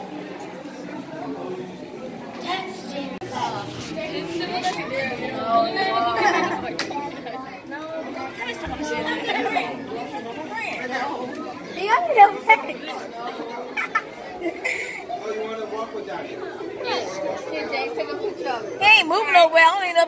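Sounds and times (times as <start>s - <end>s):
indistinct chatter of people: 0.0s - 20.0s.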